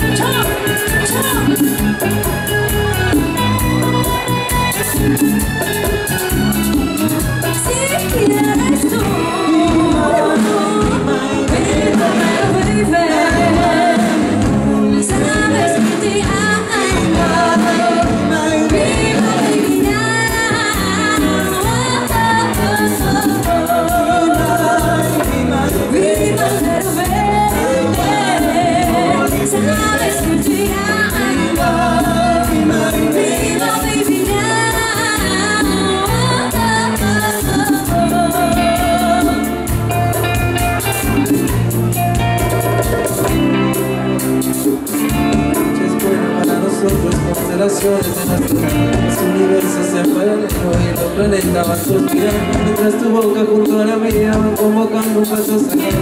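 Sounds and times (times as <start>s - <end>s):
live dance band playing: 0.0s - 56.0s
person singing: 7.5s - 41.5s, 44.8s - 56.0s.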